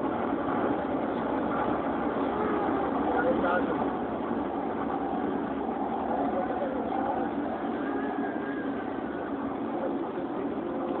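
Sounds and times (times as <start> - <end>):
faint voices: 0.0 - 11.0
vehicle engine and road noise: 0.0 - 11.0.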